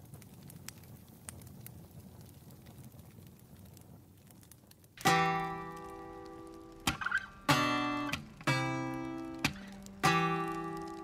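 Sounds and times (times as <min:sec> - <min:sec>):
campfire crackling: 0:00.0 - 0:11.0
fire popping: 0:00.0 - 0:11.0.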